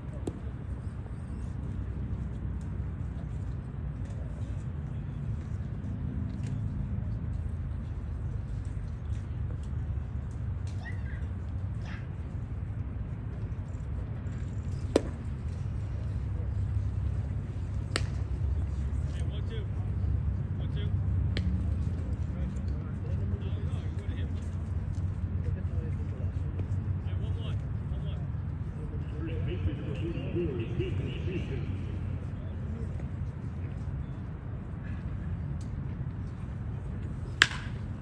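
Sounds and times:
low outdoor rumble: 0.0s - 38.0s.

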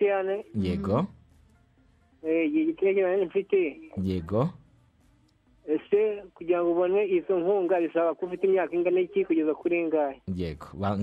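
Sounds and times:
person speaking over telephone: 0.0s - 1.1s, 5.7s - 10.2s.

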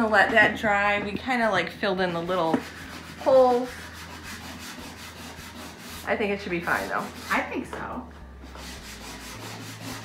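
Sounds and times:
sandpaper rubbing on wood: 2.5s - 7.5s, 8.5s - 10.0s.

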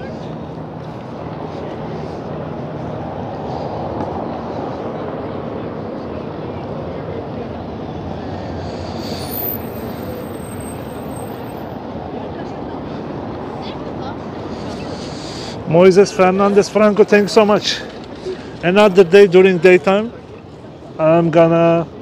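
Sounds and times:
passing traffic: 0.0s - 22.0s
high-pitched squeal: 8.4s - 11.7s.

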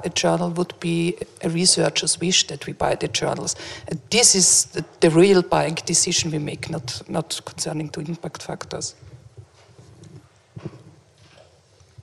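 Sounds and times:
microphone handling bumps: 8.6s - 11.4s.

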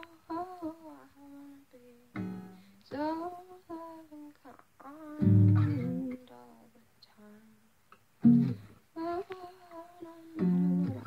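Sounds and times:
woman singing wordless melody: 0.0s - 7.7s, 9.0s - 11.0s
plucked acoustic guitar: 2.1s - 3.0s, 5.2s - 6.2s, 8.2s - 8.7s, 10.4s - 11.0s.

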